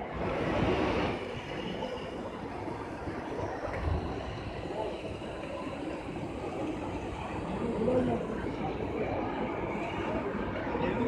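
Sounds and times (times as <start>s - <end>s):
crowd hubbub in a hall: 0.0s - 11.0s.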